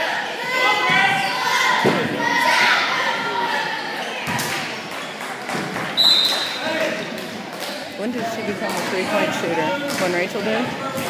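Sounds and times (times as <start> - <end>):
crowd voices: 0.0 - 11.0
referee's whistle blast: 6.0 - 6.6.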